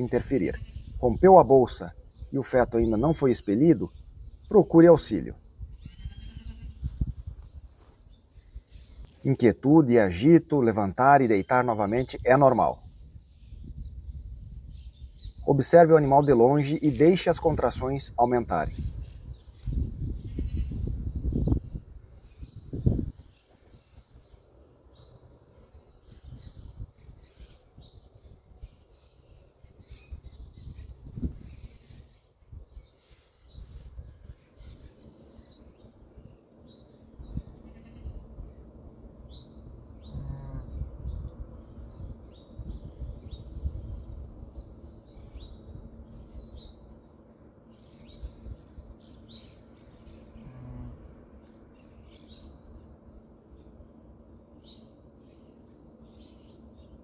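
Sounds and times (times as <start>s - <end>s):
small birds chirping: 0.0s - 57.0s
low rumbling background: 28.1s - 57.0s.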